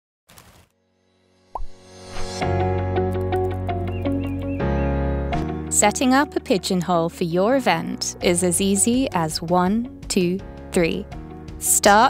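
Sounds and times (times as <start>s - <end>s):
intro music: 1.3s - 12.0s
quickly rising blip: 1.5s - 2.4s
noisy swish: 1.6s - 2.5s.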